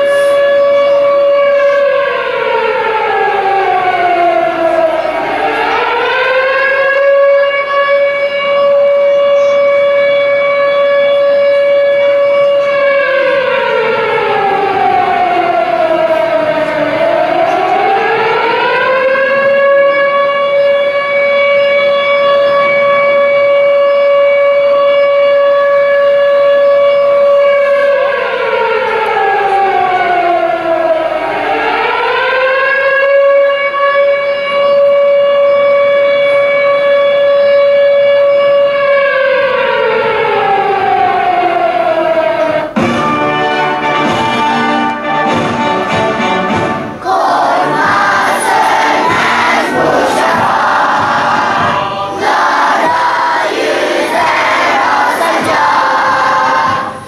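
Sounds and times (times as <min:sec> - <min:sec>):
siren wailing: 0:00.0 - 0:57.0.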